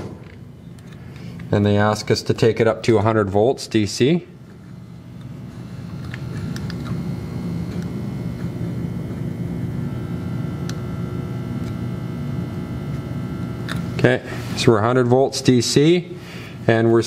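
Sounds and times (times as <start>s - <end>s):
power supply humming: 0.0s - 17.0s.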